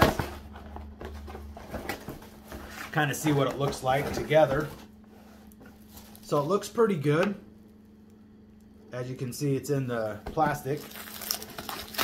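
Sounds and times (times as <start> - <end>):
handling cardboard box: 0.0 - 6.4.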